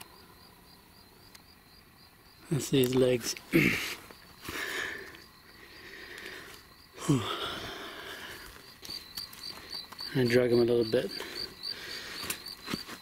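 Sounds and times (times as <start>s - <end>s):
cricket chirping: 0.0s - 13.0s
person grunting with effort: 3.5s - 4.0s, 7.0s - 7.7s
rustling in dry brush: 11.3s - 13.0s.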